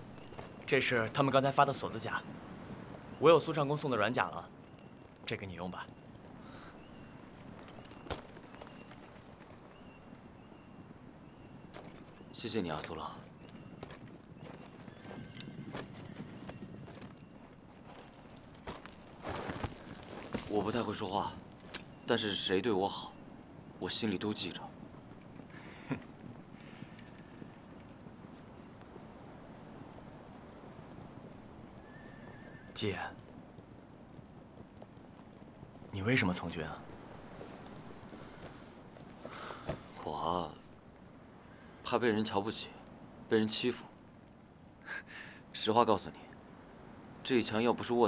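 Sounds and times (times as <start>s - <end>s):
outdoor background hiss: 0.0s - 48.0s
horse neighing: 31.8s - 32.8s.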